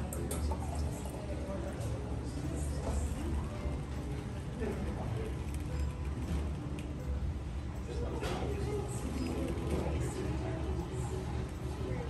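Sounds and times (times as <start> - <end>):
low machinery hum: 0.0 - 12.0.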